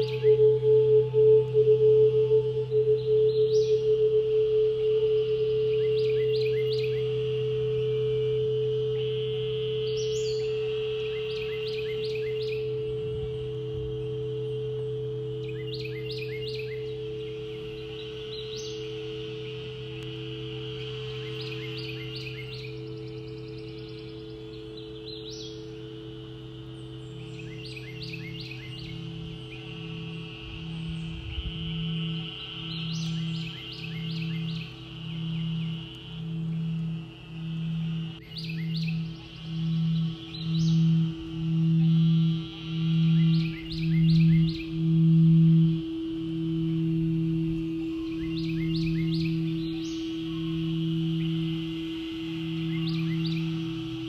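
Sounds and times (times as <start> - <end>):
bird chirping: 0.0 - 54.0
singing bowls ringing: 0.0 - 54.0.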